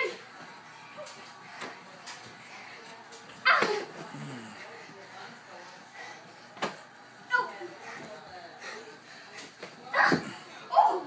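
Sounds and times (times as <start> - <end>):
boy shouting: 9.9 - 11.0.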